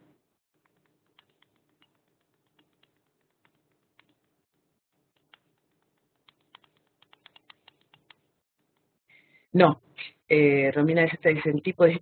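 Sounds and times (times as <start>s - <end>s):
computer keyboard clicking: 0.6s - 4.5s, 5.1s - 8.9s.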